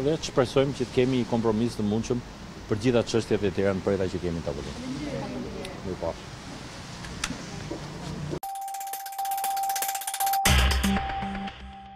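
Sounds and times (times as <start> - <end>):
held bell-like tone: 8.4 - 11.9.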